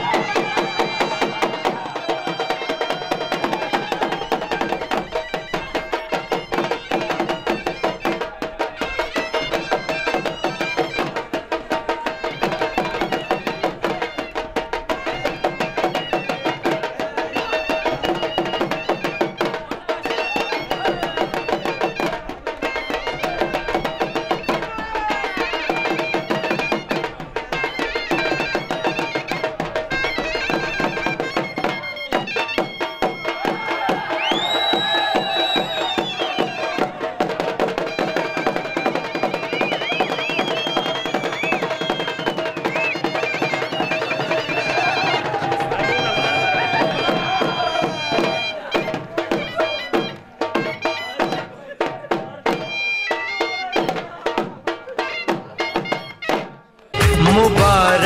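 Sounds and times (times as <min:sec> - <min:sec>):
shawm playing reedy melody: 0:00.0 - 0:51.7, 0:52.4 - 0:58.0
drums beating steadily: 0:00.0 - 0:58.0.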